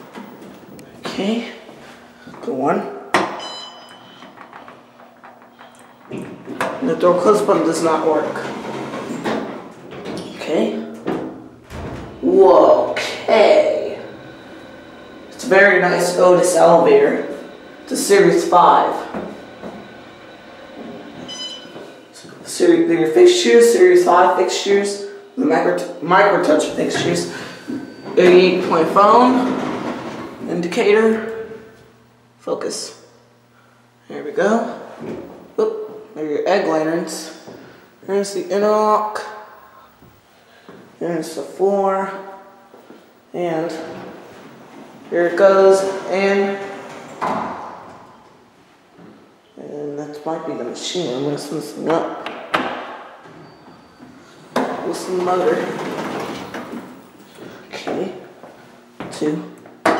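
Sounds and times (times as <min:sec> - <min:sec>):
elevator ride noise: 0:03.4 - 0:32.8, 0:42.7 - 0:49.2, 0:52.6 - 0:58.4.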